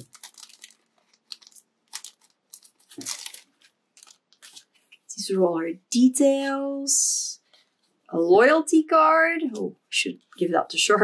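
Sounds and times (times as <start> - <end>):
plastic sleeve crinkling: 0.0 - 5.1.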